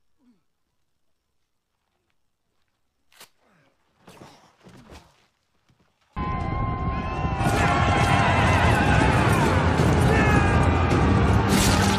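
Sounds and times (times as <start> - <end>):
film music: 6.2 - 11.9.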